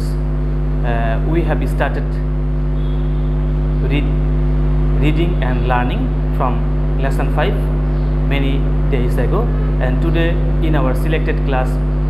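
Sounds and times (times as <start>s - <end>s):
loud low hum: 0.0s - 12.0s.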